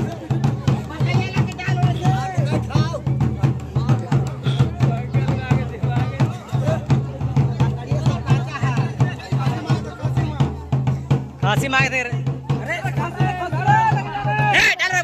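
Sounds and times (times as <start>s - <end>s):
fast steady drumming: 0.0s - 15.0s
people's voices: 0.0s - 15.0s.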